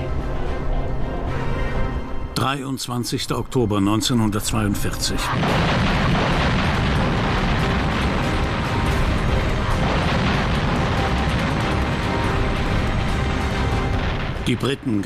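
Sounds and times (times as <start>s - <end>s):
artillery guns firing: 5.3s - 15.0s.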